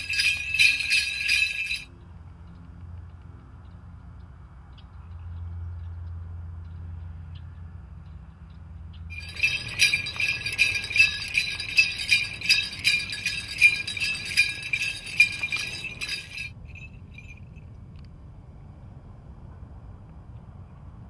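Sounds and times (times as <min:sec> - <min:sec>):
dancer's bells jingling: 0:00.0 - 0:01.9, 0:09.1 - 0:17.6.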